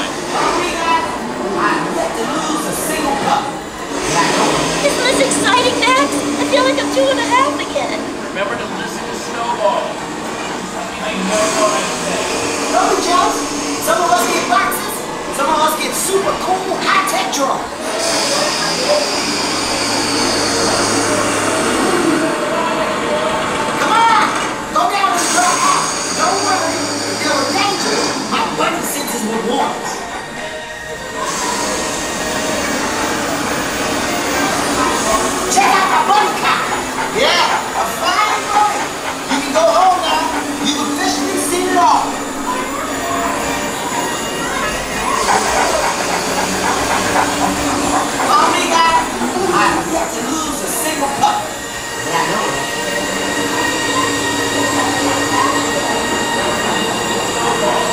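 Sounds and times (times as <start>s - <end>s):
indistinct voices: 0.0s - 57.9s
whining glides: 0.0s - 57.9s
ride vehicle mechanical rumble: 18.1s - 57.9s.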